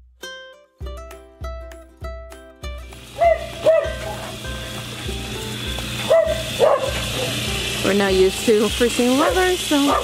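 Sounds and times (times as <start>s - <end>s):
music with steady beat: 0.0s - 8.9s.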